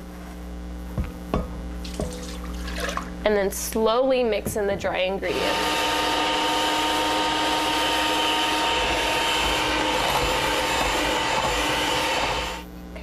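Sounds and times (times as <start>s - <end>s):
electric hand mixer whirring: 5.2s - 12.6s.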